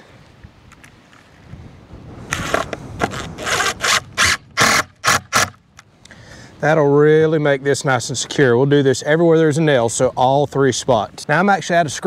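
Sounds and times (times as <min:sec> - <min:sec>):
impact driver driving screws into wood: 0:02.4 - 0:05.6.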